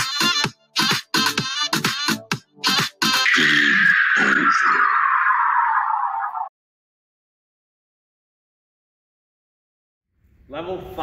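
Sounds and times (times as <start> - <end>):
electronic countdown music: 0.0 - 4.1
falling pitch sweep: 3.2 - 6.5.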